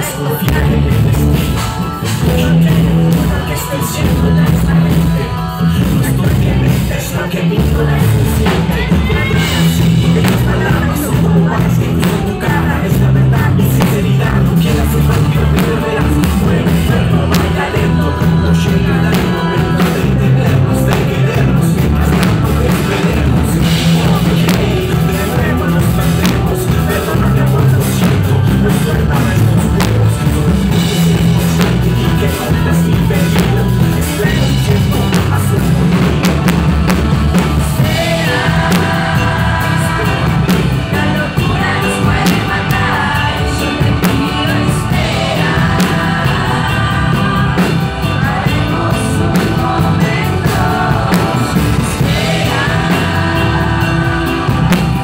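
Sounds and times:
live rock band playing: 0.0 - 55.0
person singing: 0.0 - 55.0.

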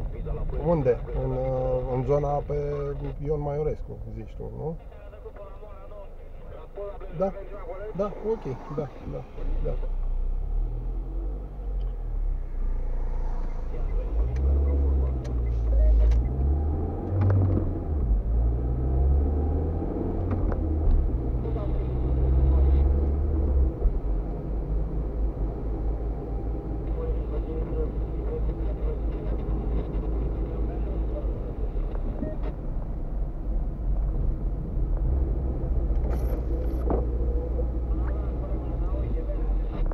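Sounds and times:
tyres on wet road: 4.8 - 39.9
car engine accelerating: 6.5 - 39.9.

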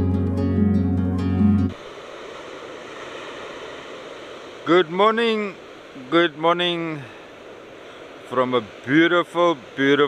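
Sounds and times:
instrumental music: 0.0 - 1.8
ocean waves breaking on beach: 1.7 - 10.0.

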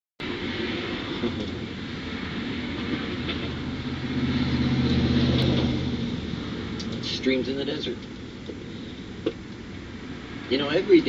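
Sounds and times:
traffic rush: 0.2 - 11.0
vehicle engine passing: 0.2 - 11.0.

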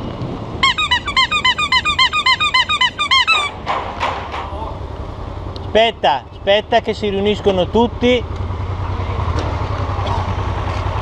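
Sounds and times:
wind and road rumble: 0.0 - 11.0
bicycle brake squealing: 0.6 - 3.7.

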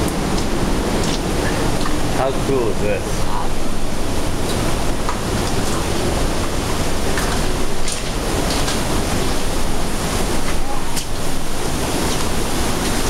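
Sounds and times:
waterfall roaring: 0.0 - 13.0.

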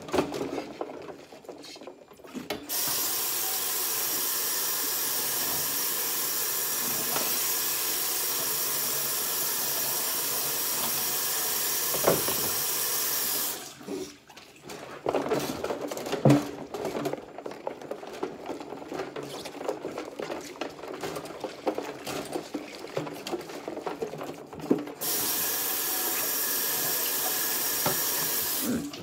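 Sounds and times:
faucet running into sink: 2.7 - 13.8, 25.0 - 28.8
plate clicks and splashes in suds: 14.3 - 25.0.

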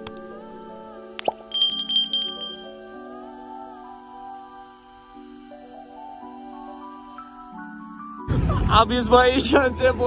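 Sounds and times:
click: 0.0 - 0.3
soft background music: 0.0 - 10.0
notification bell ringing: 1.2 - 2.8.

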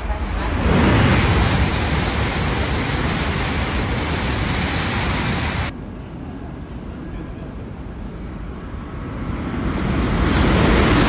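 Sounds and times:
train passing at high speed: 0.0 - 11.0.

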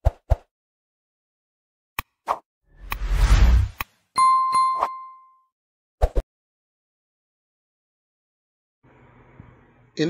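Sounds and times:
rushing swoosh: 2.8 - 3.8
notification bell ding: 4.2 - 5.5.

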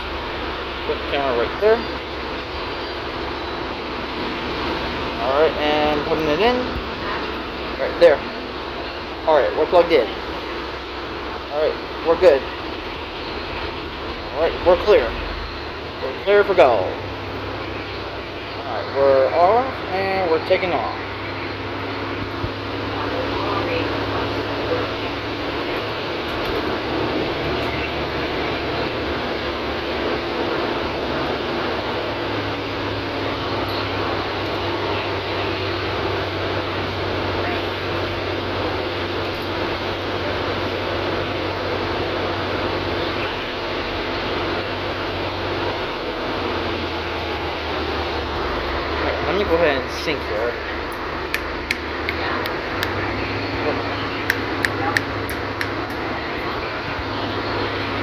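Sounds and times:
bus engine drone: 0.0 - 58.0
road noise: 0.0 - 58.0.

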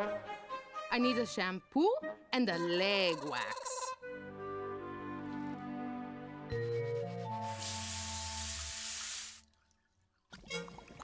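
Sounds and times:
background music: 0.0 - 9.2
spray nozzle hissing water: 7.4 - 9.4.

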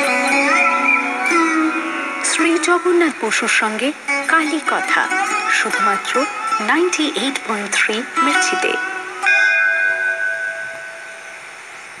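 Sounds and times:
faint hiss: 0.0 - 12.0
held electronic chord: 0.0 - 12.0.

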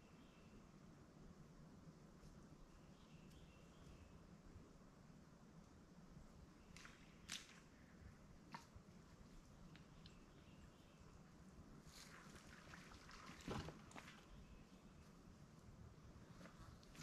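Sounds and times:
faint rustles: 11.7 - 17.0.

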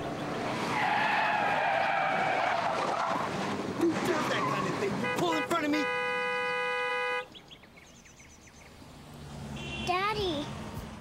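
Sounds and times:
car horn: 5.0 - 7.3, 9.5 - 10.1.

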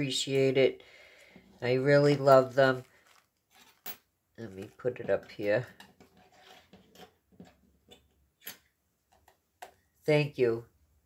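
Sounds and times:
cellophane rustle: 2.7 - 3.8.

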